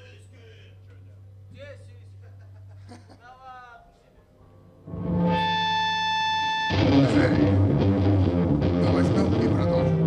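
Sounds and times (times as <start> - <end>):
low amplifier hum: 0.0 - 10.0
electric guitar chord ringing: 4.8 - 10.0.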